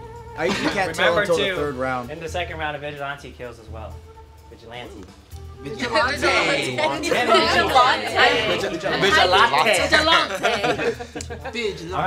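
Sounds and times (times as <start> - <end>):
group chatter: 5.7 - 11.2.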